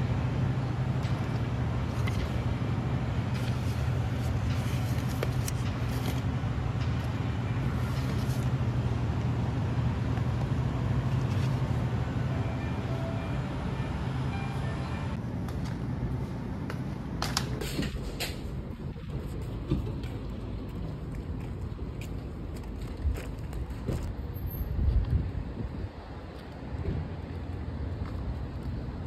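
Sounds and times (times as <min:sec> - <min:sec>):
low machinery hum: 0:00.0 - 0:29.0
paper rustling: 0:03.3 - 0:06.3.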